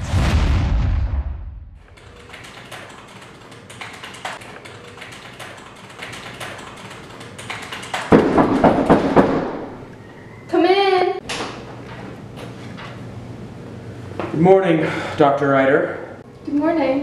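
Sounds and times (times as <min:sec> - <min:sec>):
booming sound: 0:00.0 - 0:01.9
computer keyboard typing: 0:02.0 - 0:08.2.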